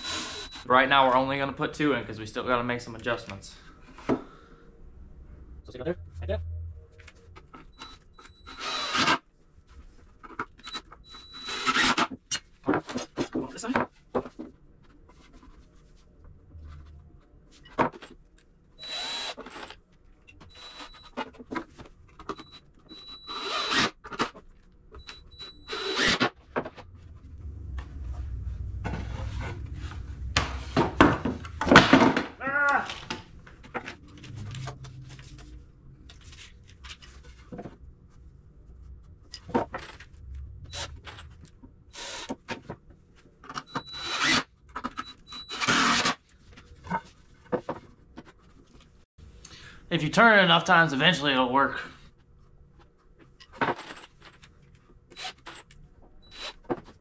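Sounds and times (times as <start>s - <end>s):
screw gun whining: 0.0s - 0.7s, 7.8s - 9.2s, 10.6s - 12.1s, 18.8s - 19.8s, 20.4s - 21.2s, 22.3s - 24.4s, 25.0s - 26.3s, 42.0s - 42.4s, 43.6s - 46.2s, 56.2s - 56.7s
screw squealing in wood: 7.8s - 9.2s, 10.6s - 12.1s, 22.4s - 24.0s, 25.0s - 26.3s, 43.7s - 46.2s.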